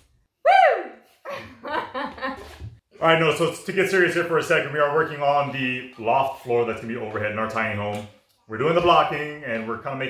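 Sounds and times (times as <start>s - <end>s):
man and woman laughing: 1.3s - 2.6s.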